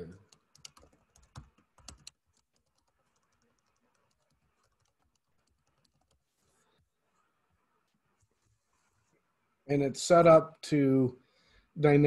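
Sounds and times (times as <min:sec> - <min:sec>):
keyboard typing: 0:00.2 - 0:06.3.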